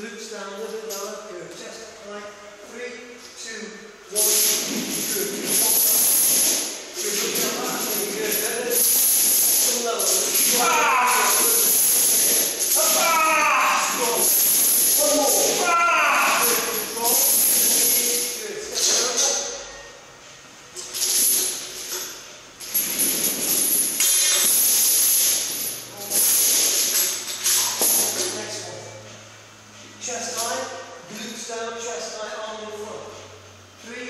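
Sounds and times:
steel chain rattling and clinking: 0:04.2 - 0:15.6, 0:20.8 - 0:28.3.

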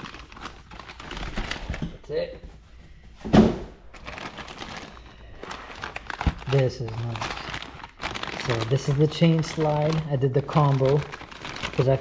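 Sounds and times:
plastic bag crinkling: 0:00.0 - 0:02.2, 0:03.8 - 0:12.0.

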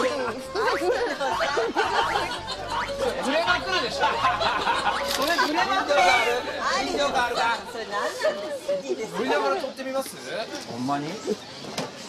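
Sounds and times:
overlapping chatter: 0:00.0 - 0:12.0.

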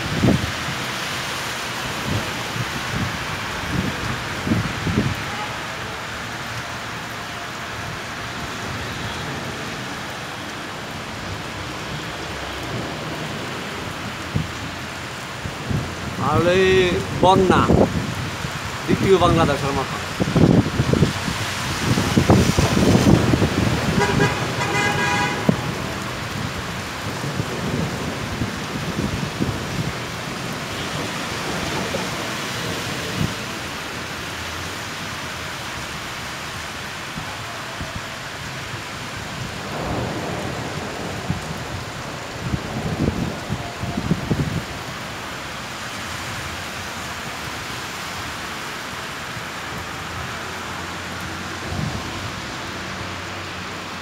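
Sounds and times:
car tyres hissing through water: 0:00.0 - 0:18.9, 0:19.8 - 0:54.0
heavy rain: 0:00.0 - 0:54.0
vehicles passing: 0:00.0 - 0:54.0
car horn: 0:23.9 - 0:25.9.

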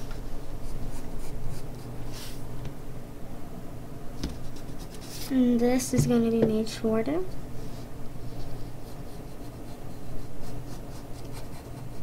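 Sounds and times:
pencil scratching on paper: 0:08.4 - 0:12.0.

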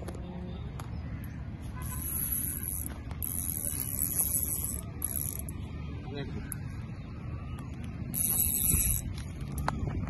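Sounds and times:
fishing reel drag buzzing: 0:01.8 - 0:05.6, 0:08.1 - 0:09.2.

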